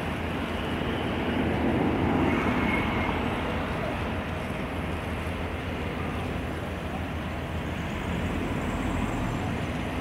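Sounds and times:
low engine rumble: 0.0 - 10.0.

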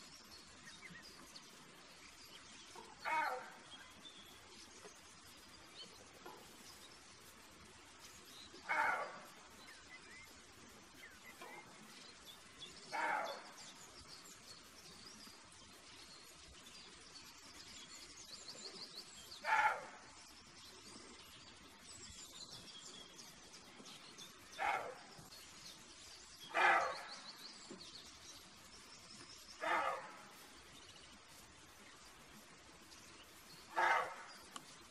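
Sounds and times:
birds chirping: 0.0 - 34.9
deer barking: 3.0 - 3.6, 8.6 - 9.4, 12.9 - 13.6, 19.4 - 20.1, 24.5 - 25.1, 26.5 - 27.2, 29.6 - 30.4, 33.7 - 34.6.

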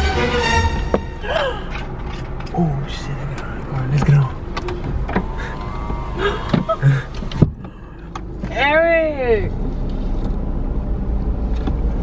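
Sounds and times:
car engine rumble from cabin: 0.0 - 12.0.

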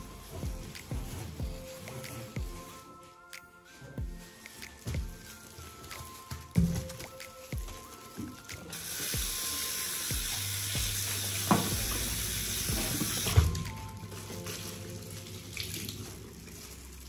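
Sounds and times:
cloth rinsed under water: 4.4 - 17.0
tap water running into basin: 6.0 - 17.0.

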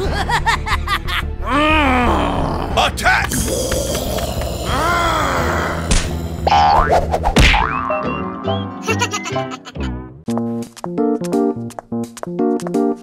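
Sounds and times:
background music: 0.0 - 13.0
cartoon character groans and cries: 1.4 - 2.8, 3.4 - 5.9.

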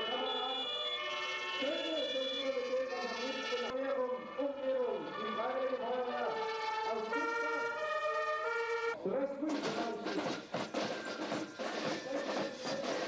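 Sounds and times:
fire truck sirens: 0.0 - 9.0.

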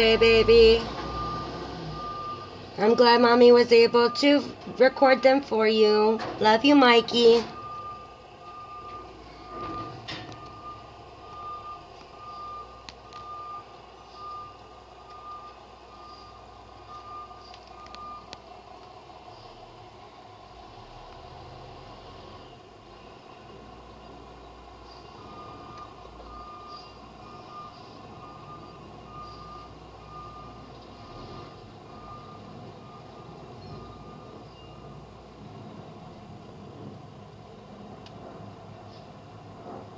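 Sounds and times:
truck reversing alarm beeping: 0.0 - 19.9, 23.9 - 36.1
truck engine running: 0.0 - 39.9.

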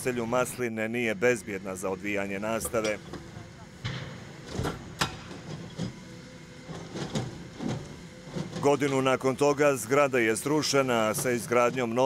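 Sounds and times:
excavator engine running: 0.0 - 12.0.

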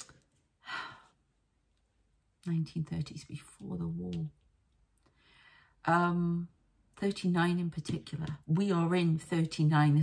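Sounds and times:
woman breathing: 0.6 - 1.3, 5.0 - 5.8.

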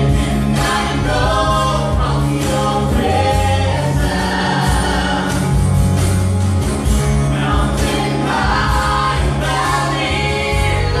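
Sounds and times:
bass notes: 0.0 - 11.0
keyboard: 0.0 - 11.0
woman singing lead: 7.3 - 11.0.

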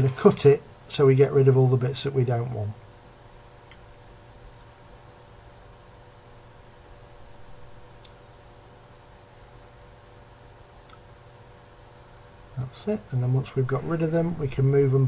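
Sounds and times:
low electrical hum: 0.0 - 15.0
faint mouse clicks: 8.0 - 8.2.

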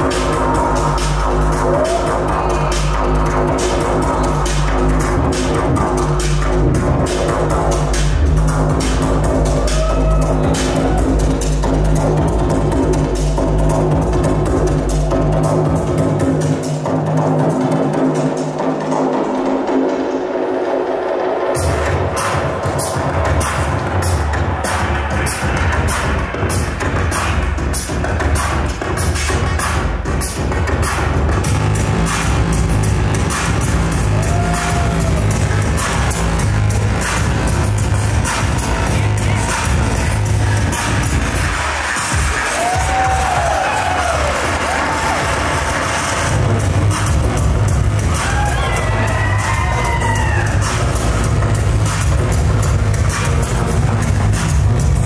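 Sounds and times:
deep bass: 0.0 - 18.4, 21.6 - 55.0.

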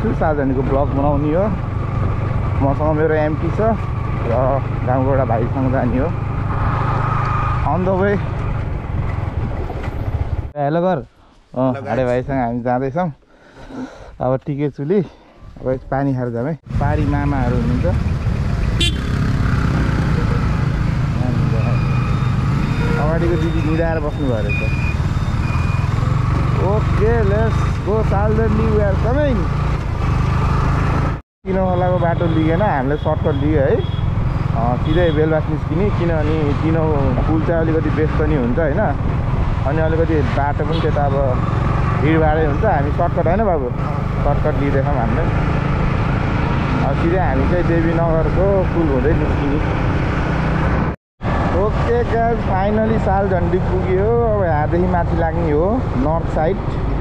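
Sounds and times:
road noise: 0.0 - 57.0
motorcycle engine rumble: 16.7 - 55.9
short high horn beep: 18.8 - 19.2.

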